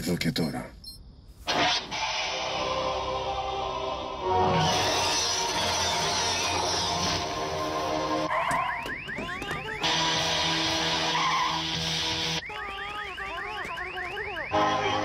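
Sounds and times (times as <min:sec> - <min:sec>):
electronic alarm chirps: 0:08.3 - 0:15.0.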